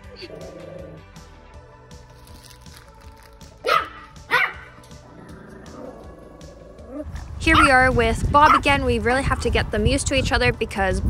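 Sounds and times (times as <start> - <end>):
background music: 0.0 - 11.0
puppy yapping: 3.6 - 4.8.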